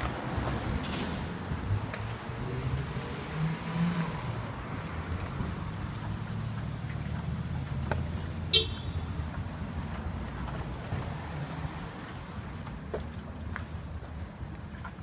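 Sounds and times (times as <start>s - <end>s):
low rumble of vehicle engines: 0.0s - 15.0s.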